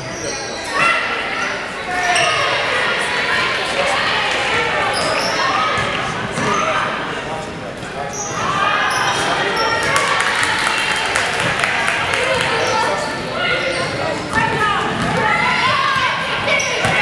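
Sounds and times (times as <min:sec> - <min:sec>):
sneakers squeaking: 0:00.0 - 0:02.6, 0:04.5 - 0:07.0, 0:07.8 - 0:10.2, 0:12.2 - 0:17.0
echoing voices: 0:00.0 - 0:17.0.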